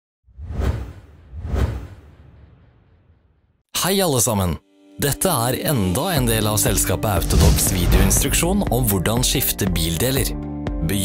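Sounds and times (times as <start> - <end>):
whoosh sound effects: 7.2 - 8.5
deep bass rumble: 7.2 - 9.4.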